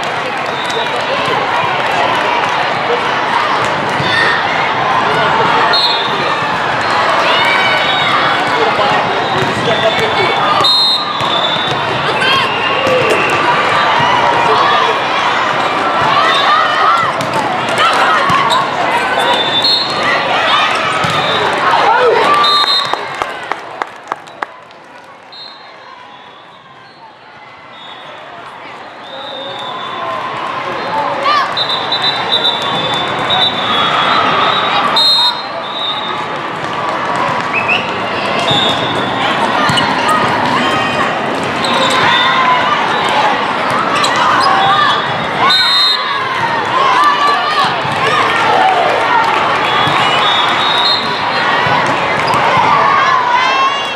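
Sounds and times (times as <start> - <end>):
voices calling and chattering: 0.0 - 23.5, 24.3 - 53.9
volleyballs struck and bouncing: 8.4 - 12.2, 12.8 - 14.5, 16.9 - 19.5, 20.9 - 21.4, 51.6 - 52.8.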